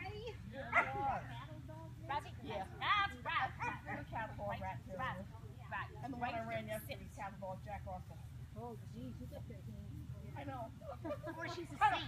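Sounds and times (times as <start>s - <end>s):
dog barking: 0.7s - 1.3s, 3.6s - 4.0s.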